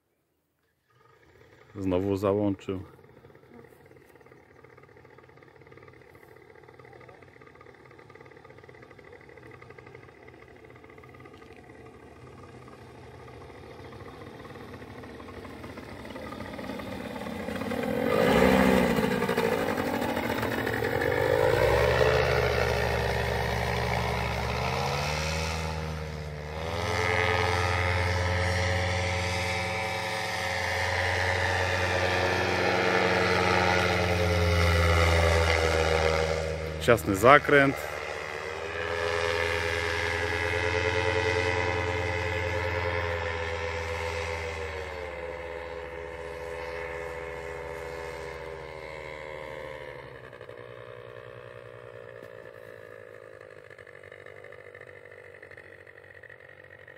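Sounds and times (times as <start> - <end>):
paramotor engine and propeller droning: 0.0 - 56.9.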